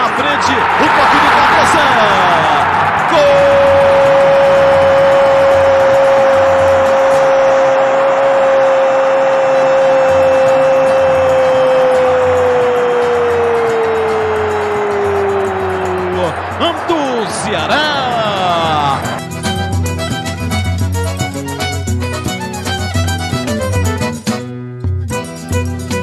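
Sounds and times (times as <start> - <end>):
commentator's long goal cry: 3.1 - 19.2.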